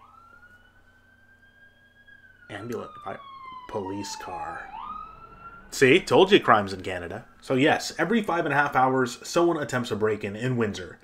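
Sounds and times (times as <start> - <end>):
faint emergency siren wailing: 0.0 - 8.9.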